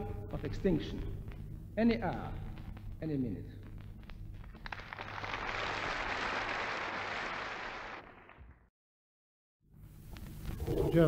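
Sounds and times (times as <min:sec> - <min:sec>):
audience applauding on vinyl: 0:03.8 - 0:08.7.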